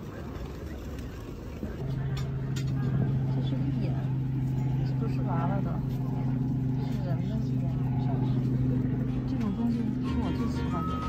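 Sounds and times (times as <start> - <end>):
faint voices: 0.0 - 11.0
low mechanical hum: 0.0 - 11.0.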